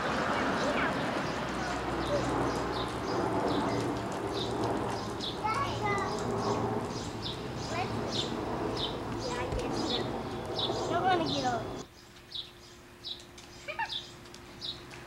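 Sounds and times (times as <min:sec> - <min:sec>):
faint voices: 0:00.0 - 0:06.9, 0:07.6 - 0:11.8
steady background noise: 0:00.0 - 0:15.0
small bird chirping: 0:00.6 - 0:14.8.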